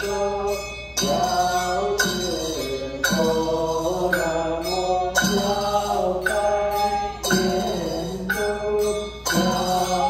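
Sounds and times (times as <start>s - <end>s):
mantra chanting with music: 0.0s - 10.0s.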